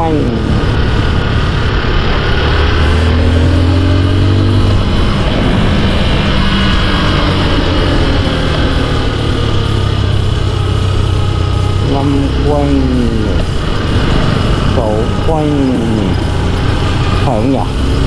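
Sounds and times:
motorcycle engine running: 0.0 - 18.0
wind rush on microphone: 0.0 - 18.0.

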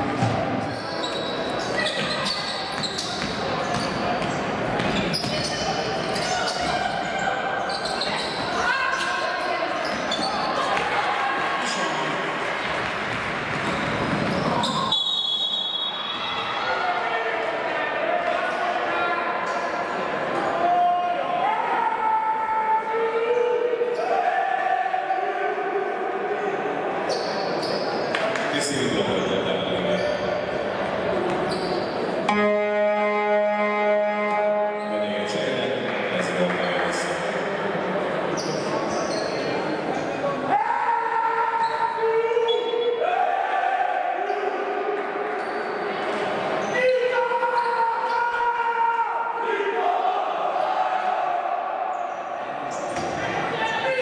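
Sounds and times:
basketball bouncing: 12.8 - 14.6
referee's whistle: 14.5 - 16.5, 31.5 - 35.2.

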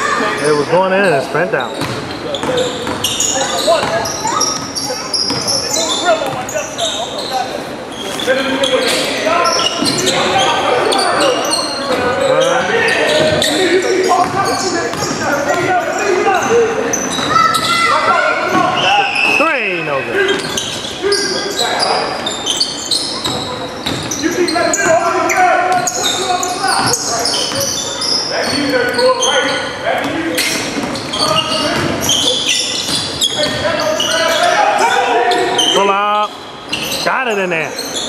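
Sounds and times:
sneakers squeaking: 0.0 - 38.0
voices echoing in a gym: 0.0 - 38.0
basketball bouncing: 1.8 - 3.2, 3.8 - 5.5, 14.2 - 15.7, 23.2 - 24.2, 30.0 - 33.6.

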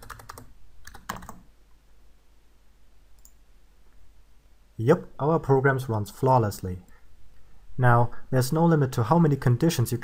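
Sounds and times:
faint click: 3.2 - 4.0.

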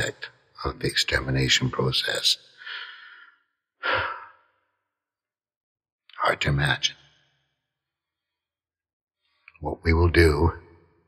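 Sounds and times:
man sighing: 3.8 - 4.3.

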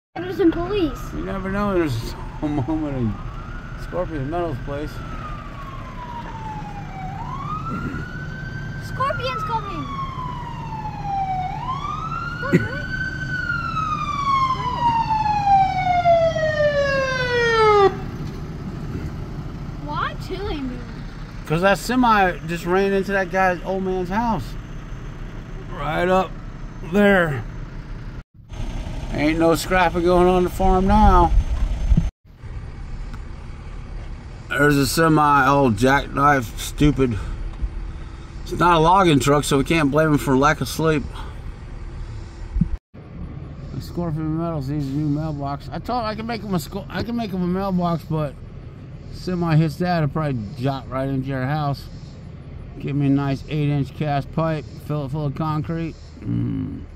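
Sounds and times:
police siren wailing: 0.2 - 18.7.

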